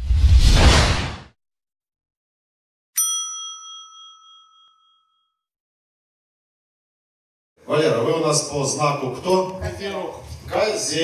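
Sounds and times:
bell-like ding chime: 3.0 - 5.5.

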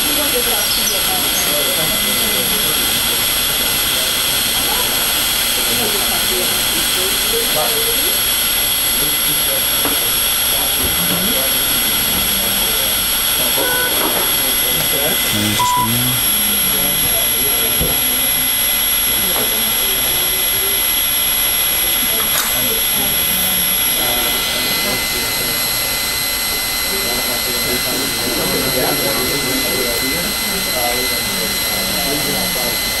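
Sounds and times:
muffled voices: 0.0 - 33.0.

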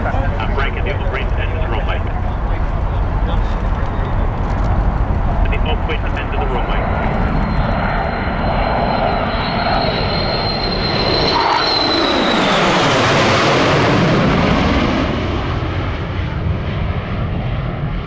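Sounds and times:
jet aircraft passing overhead: 0.0 - 18.0.

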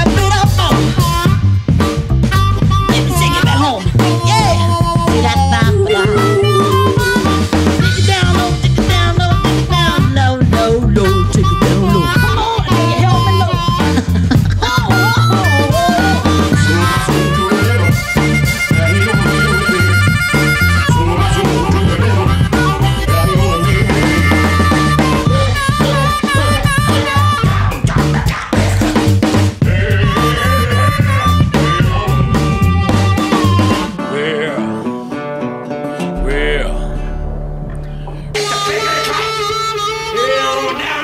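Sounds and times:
bass line: 0.0 - 34.0, 36.0 - 40.6
drum beat: 0.0 - 34.0
blues harmonica: 0.0 - 37.0, 37.9 - 41.0.

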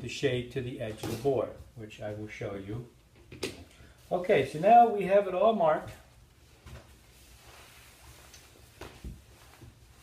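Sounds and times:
fabric rustling: 5.9 - 10.0
cloth brushing: 6.3 - 10.0.

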